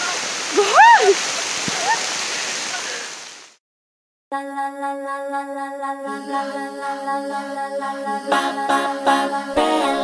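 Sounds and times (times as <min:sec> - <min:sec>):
woman calling: 0:00.5 - 0:01.2.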